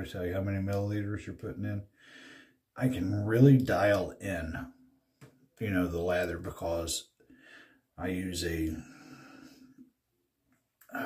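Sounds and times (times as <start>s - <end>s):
man talking: 0.0s - 1.9s, 2.8s - 4.8s, 5.6s - 7.1s, 8.0s - 9.1s
man breathy exhale: 2.0s - 2.6s.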